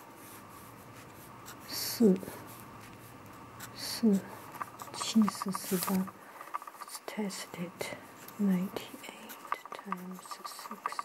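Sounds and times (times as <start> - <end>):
pen scratching on paper: 0.2 - 3.0, 3.6 - 11.0.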